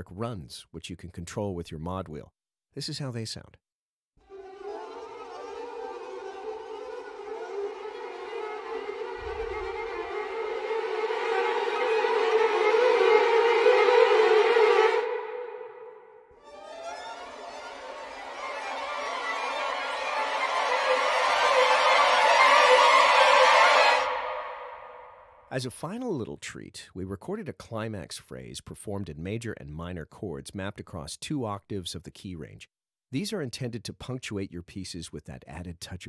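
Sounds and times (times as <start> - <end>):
violins playing fast runs: 4.3 - 25.0.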